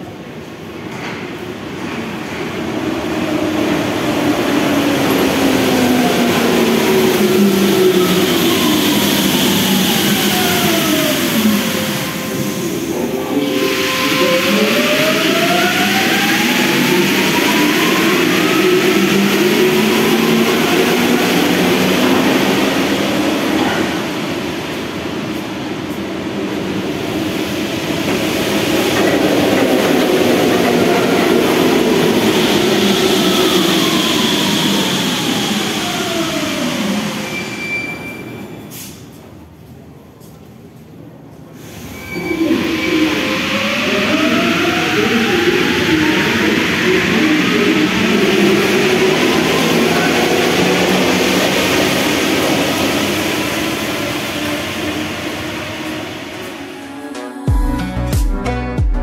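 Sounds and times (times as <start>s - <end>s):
train rolling rumble: 0.0s - 37.4s.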